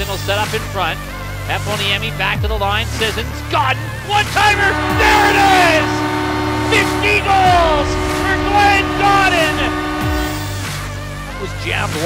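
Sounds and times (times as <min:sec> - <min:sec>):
crowd yelling excitedly: 0:04.0 - 0:10.4
goal horn blaring: 0:04.1 - 0:10.9.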